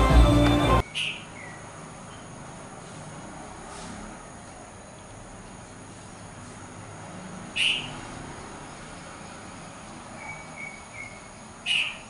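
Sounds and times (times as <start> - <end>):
bird sharp calls: 0.8 - 1.6, 7.5 - 8.0, 10.2 - 12.0.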